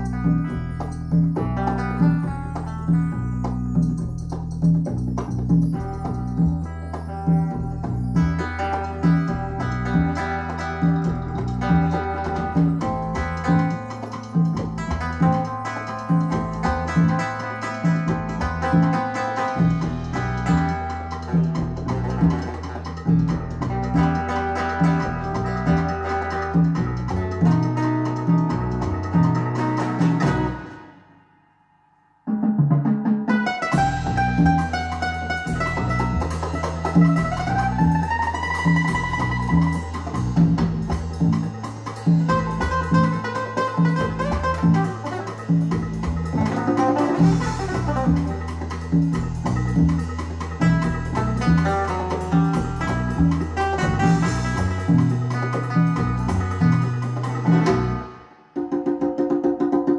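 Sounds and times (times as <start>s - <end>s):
repeating bass line: 0.0s - 30.8s, 33.7s - 58.2s
plucked-string notes: 0.0s - 31.6s, 32.2s - 59.9s
music from speakers in a room: 0.0s - 59.9s
repeating bass note: 33.7s - 58.2s.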